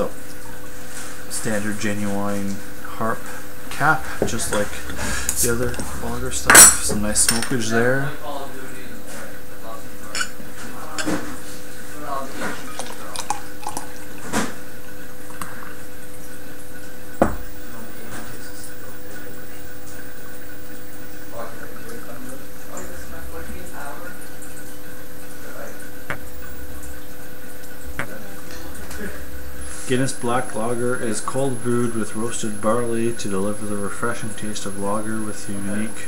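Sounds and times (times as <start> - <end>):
glass clicks: 6.5 - 7.6
beer pouring into a glass: 11.9 - 28.5.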